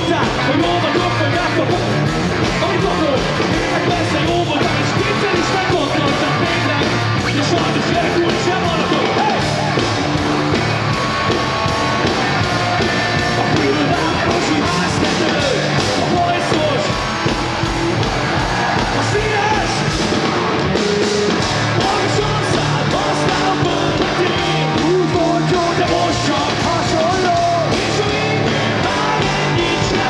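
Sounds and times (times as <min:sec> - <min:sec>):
punk rock band playing: 0:00.0 - 0:30.0.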